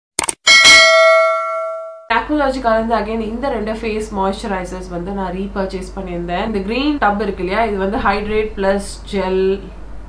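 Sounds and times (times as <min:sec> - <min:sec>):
bright bell ding: 0:00.5 - 0:02.1.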